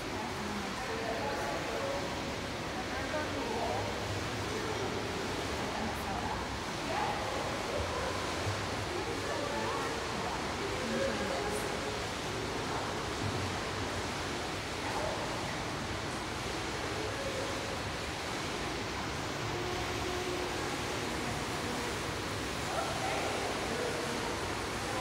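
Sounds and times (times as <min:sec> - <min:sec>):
faint voices: 0:00.0 - 0:25.0
swimming pool water noise: 0:00.0 - 0:25.0.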